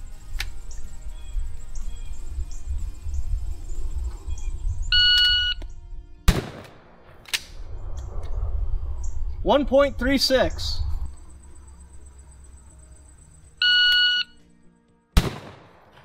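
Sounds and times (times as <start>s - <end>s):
shotgun blast: 6.3s - 7.2s, 15.2s - 16.0s
shot timer beep: 13.6s - 14.3s.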